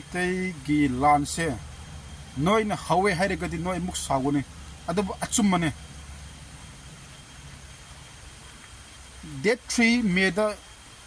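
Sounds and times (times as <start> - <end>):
outdoor rumble and hiss: 0.0 - 11.0.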